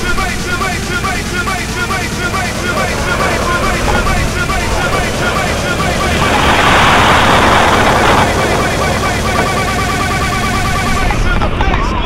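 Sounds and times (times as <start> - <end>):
car engines rumbling: 0.0 - 12.0
voices close by: 0.0 - 12.0
burst of rushing noise: 1.4 - 11.0.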